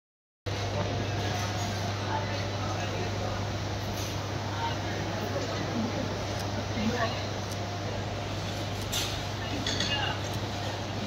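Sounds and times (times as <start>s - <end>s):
constant low hum: 0.5s - 11.0s
faint indistinct voices: 0.5s - 11.0s.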